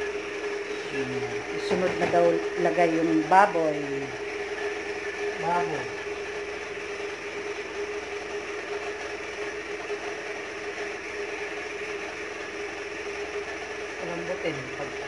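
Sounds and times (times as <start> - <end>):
steady whirring kitchen hum: 0.0 - 15.0.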